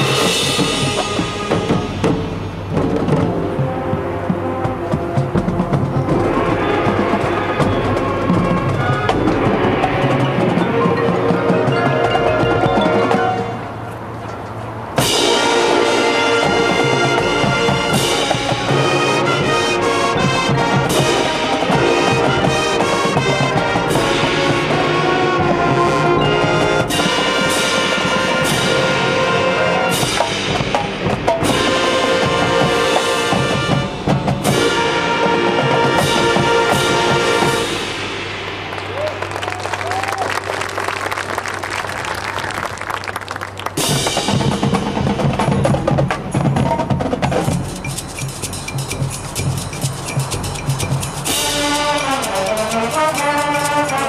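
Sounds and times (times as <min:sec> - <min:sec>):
sharp percussion hits: 0:00.0 - 0:39.6, 0:43.8 - 0:54.0
marching band playing: 0:00.0 - 0:54.0.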